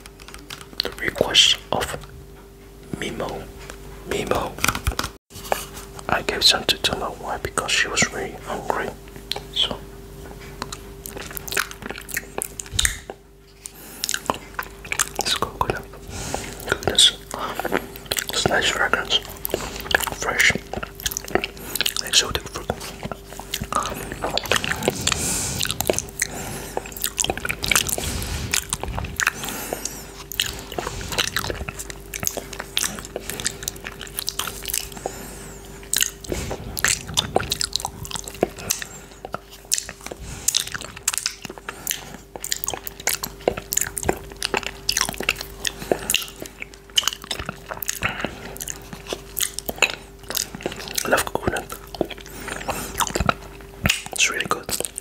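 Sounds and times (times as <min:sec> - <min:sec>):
wet lip smacks and tongue clicks: 0:09.3 - 0:09.5, 0:10.6 - 0:55.0.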